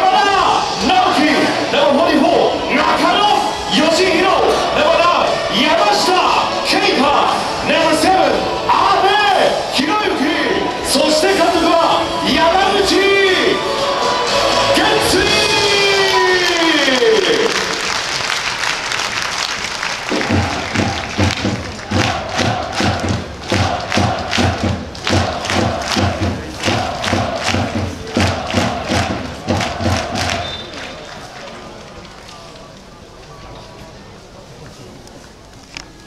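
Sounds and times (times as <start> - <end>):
supporters chanting: 0.0 - 17.9, 20.1 - 31.6
drum beat: 20.1 - 30.6.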